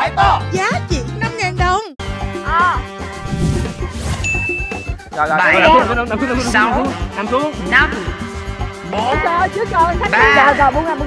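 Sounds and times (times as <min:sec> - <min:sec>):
electronic ding: 0:04.2 - 0:05.0.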